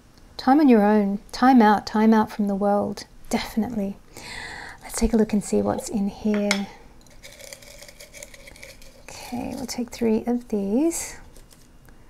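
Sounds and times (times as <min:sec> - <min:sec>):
paper slips rustling in glass jar: 0:07.0 - 0:09.8
faint background music: 0:09.1 - 0:11.5.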